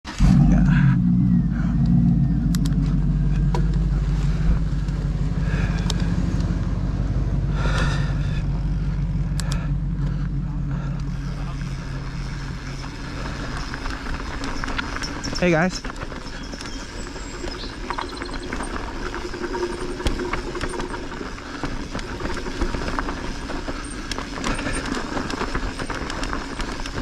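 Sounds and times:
bike tyres rumbling on dirt: 0:00.1 - 0:27.0
bike clicks and rattles: 0:01.4 - 0:27.0.

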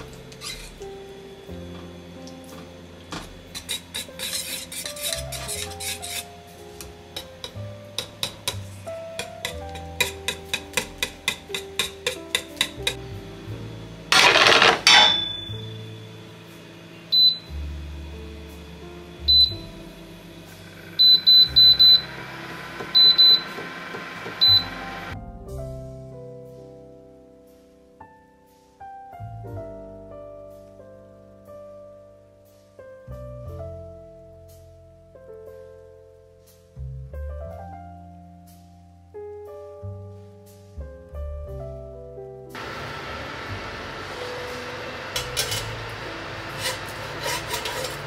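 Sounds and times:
background piano music: 0:00.0 - 0:48.0
cooktop touch control beeps: 0:14.9 - 0:15.8, 0:17.1 - 0:17.5, 0:19.3 - 0:19.6, 0:21.0 - 0:22.2, 0:22.9 - 0:23.7, 0:24.4 - 0:24.9.

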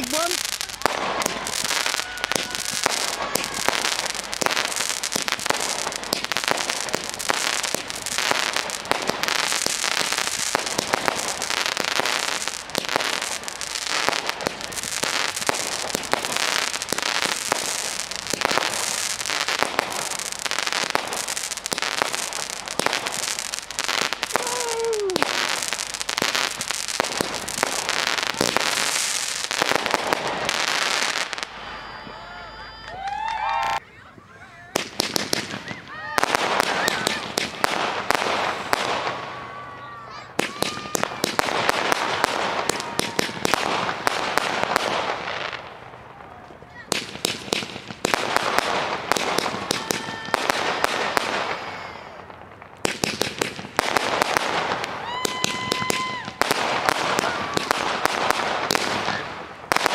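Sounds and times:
fireworks barrage: 0:00.0 - 0:59.9.

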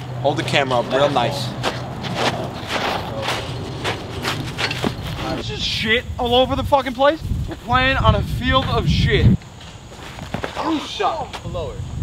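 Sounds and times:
footsteps on dirt: 0:00.5 - 0:05.4, 0:09.4 - 0:11.5.

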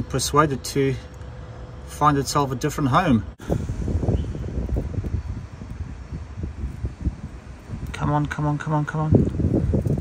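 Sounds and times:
wind buffeting microphone: 0:03.2 - 0:10.0.

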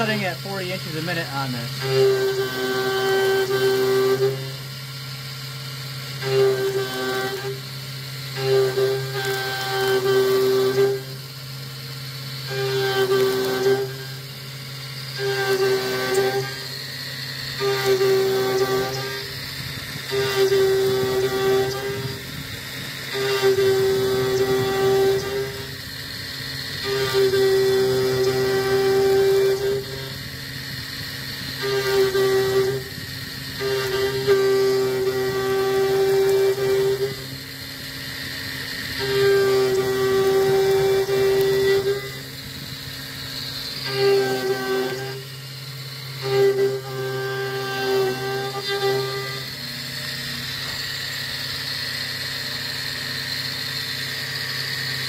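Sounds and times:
high-pitched cutting whine: 0:00.0 - 0:55.0
mill spindle humming: 0:00.0 - 0:55.0.

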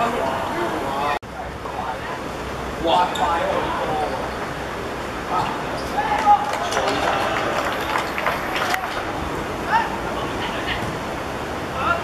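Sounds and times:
people shouting and calling out: 0:05.3 - 0:07.8, 0:08.5 - 0:10.8.

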